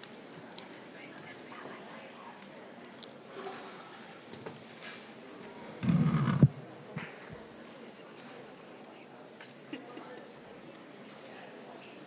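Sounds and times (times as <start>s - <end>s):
faint low voices whispering: 0.0s - 12.0s.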